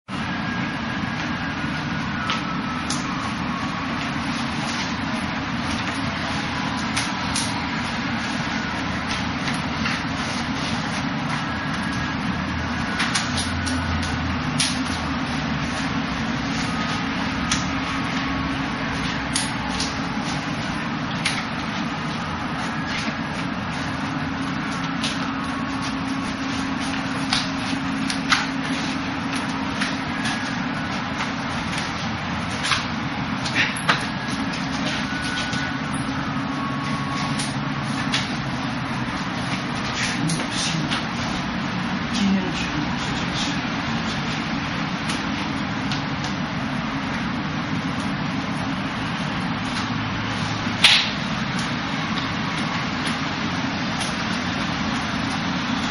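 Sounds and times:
steady rushing background noise: 0.1 - 55.9
forearms and hands slapping: 13.0 - 15.0.

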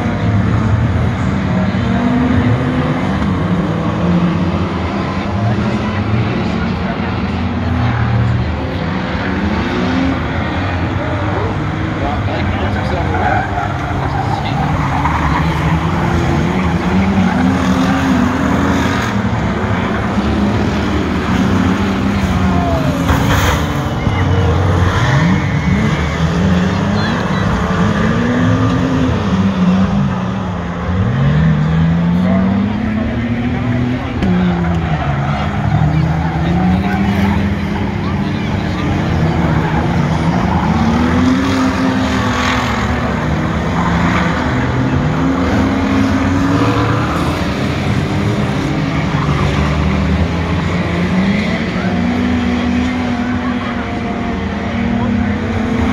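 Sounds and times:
race car engines revving: 0.0 - 55.9.

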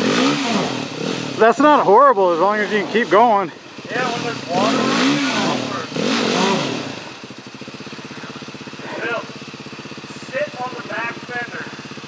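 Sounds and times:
dirt bike engine chugging: 0.0 - 12.0.

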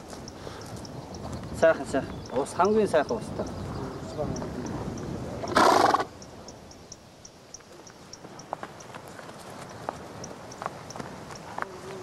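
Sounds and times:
horse snorting: 5.4 - 6.1.

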